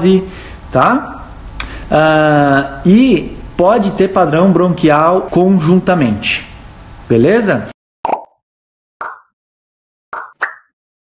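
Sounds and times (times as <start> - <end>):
bright pop sound effects: 10.2 - 10.7.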